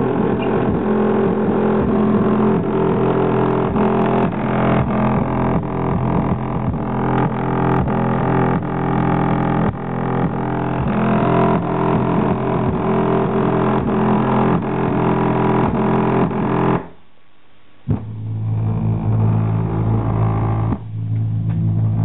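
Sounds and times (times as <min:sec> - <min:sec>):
bass-heavy music through subwoofer: 0:00.0 - 0:22.0.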